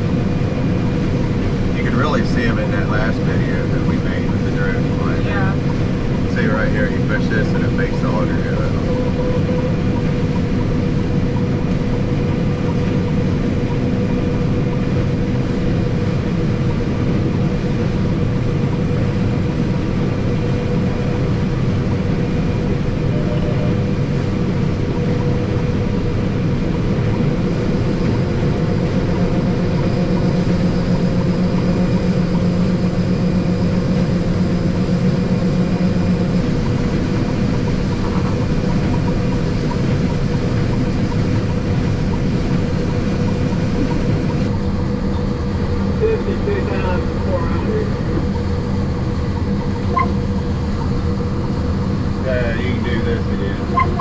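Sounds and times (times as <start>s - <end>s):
combine harvester drone: 0.0s - 54.0s
deeper hum: 0.0s - 54.0s.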